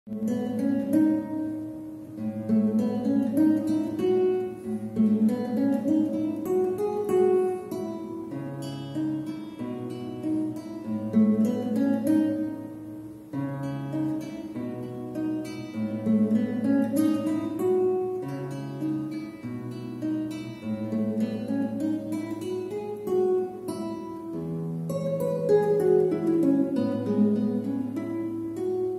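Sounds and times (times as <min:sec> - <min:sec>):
classical guitar arpeggios: 0:00.1 - 0:28.9.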